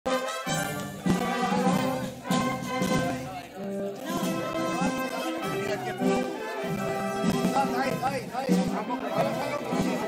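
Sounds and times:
brass band playing: 0.1s - 10.0s.

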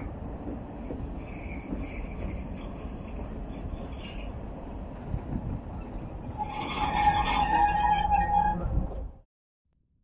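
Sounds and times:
train wheels squealing: 0.0s - 8.8s
rumble of rolling wagons: 0.0s - 9.2s.

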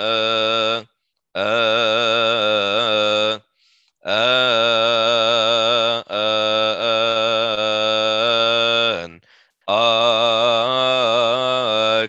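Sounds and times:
person chanting a hymn: 0.0s - 3.4s, 4.1s - 12.0s.

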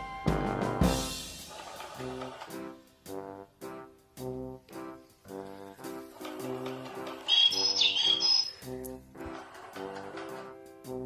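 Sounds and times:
background music: 0.0s - 11.0s
electronic toy chirp: 7.2s - 8.6s.

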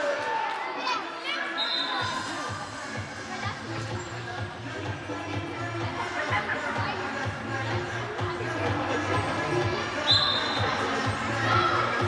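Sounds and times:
crowd chatter: 0.0s - 12.0s
background music: 1.3s - 12.0s
referee's whistle blast: 1.5s - 2.1s, 10.0s - 10.7s.

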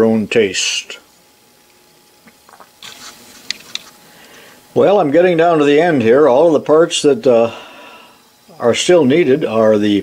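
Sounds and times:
hands rubbing metal parts: 2.8s - 4.0s.

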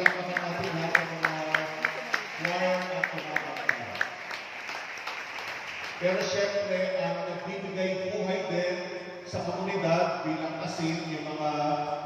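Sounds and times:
congregation applauding: 0.0s - 7.3s.

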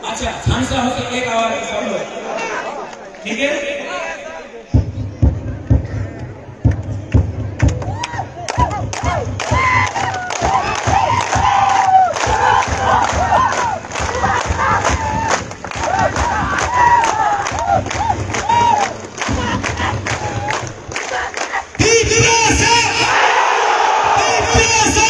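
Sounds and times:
crowd cheering and shouting: 0.7s - 6.3s, 6.9s - 25.0s.

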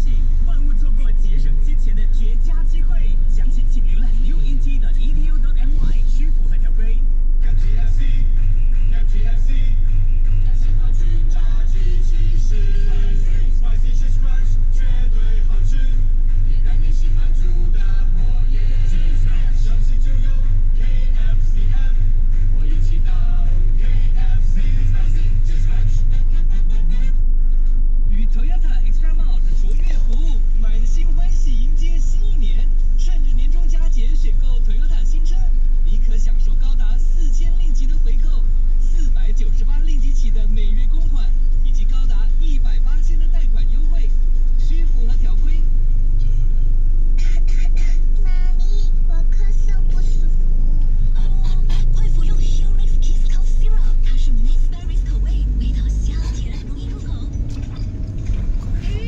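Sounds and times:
car engine rumble: 0.0s - 59.0s
voices talking: 28.2s - 30.5s, 47.2s - 52.5s, 53.2s - 59.0s.

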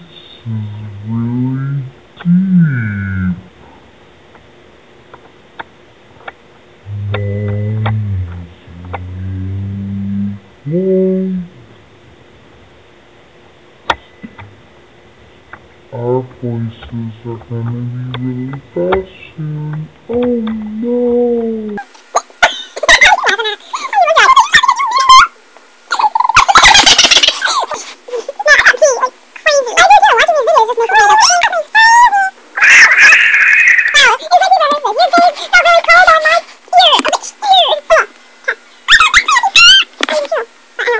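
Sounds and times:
high-pitched vocal sound: 0.0s - 3.5s, 6.9s - 11.8s, 16.0s - 25.3s, 25.9s - 40.9s
sped-up voice shrieking: 30.9s - 34.6s.

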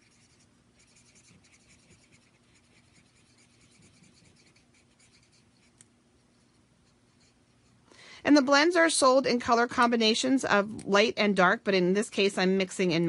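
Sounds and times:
marker scratching on card: 0.0s - 7.8s.

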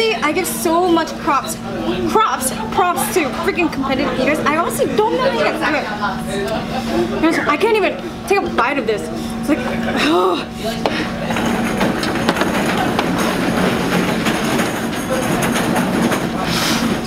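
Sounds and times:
restaurant background din: 0.0s - 17.0s
steady low hum: 0.0s - 17.0s.

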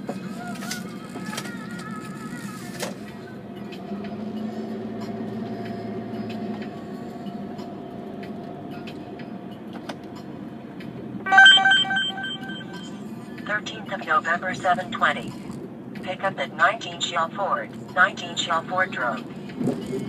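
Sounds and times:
car engine and tyre noise: 0.0s - 11.2s, 12.0s - 20.0s
electronic beeps: 11.3s - 13.0s.

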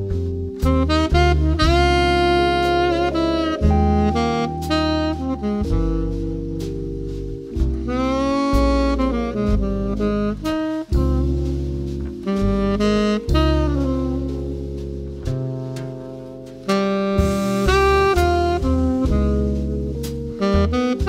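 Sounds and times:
drums played with brushes: 0.0s - 21.0s
upright bass: 0.0s - 21.0s
saxophone melody: 0.1s - 21.0s.

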